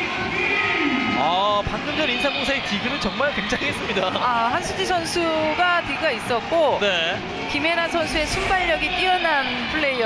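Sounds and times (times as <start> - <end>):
crowd din: 0.0 - 10.0
music over loudspeakers: 0.0 - 10.0.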